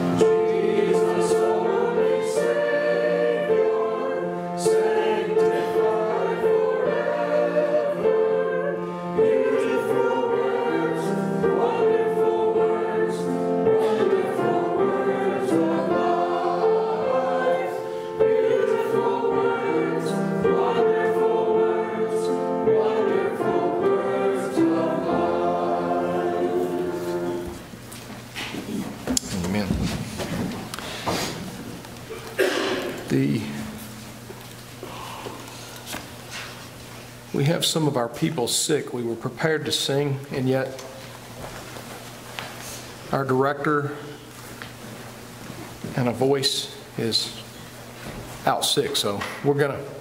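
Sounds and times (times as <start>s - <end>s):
congregation singing a hymn: 0.0s - 27.8s, 32.3s - 34.2s, 45.8s - 50.0s.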